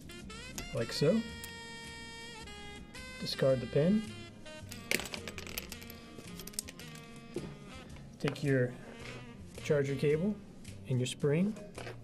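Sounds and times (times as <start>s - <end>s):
background music: 0.0s - 12.0s
plastic pen part clattering on table: 4.8s - 5.9s.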